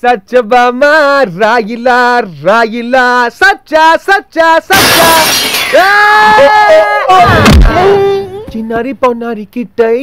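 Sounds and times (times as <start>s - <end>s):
glass shattering crash: 4.7s - 6.0s
man screaming: 4.8s - 8.6s.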